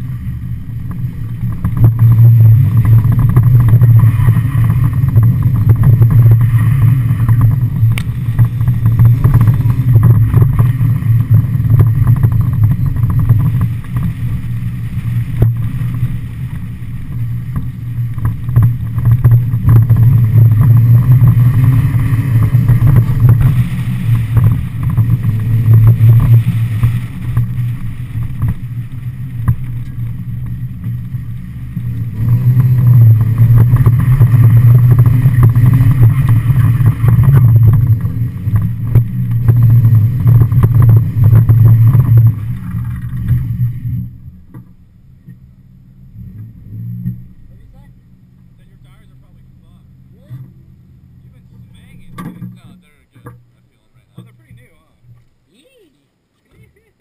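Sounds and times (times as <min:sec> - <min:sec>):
car engine running hard: 0:00.0 - 0:55.4.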